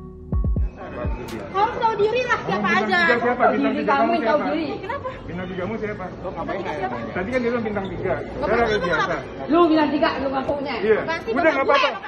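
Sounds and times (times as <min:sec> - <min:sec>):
people arguing in echoing hall: 0:01.3 - 0:05.4, 0:06.5 - 0:12.0.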